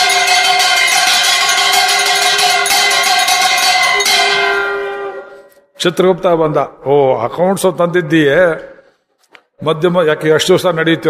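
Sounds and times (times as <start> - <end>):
bell ringing rapidly: 0.0 - 5.1.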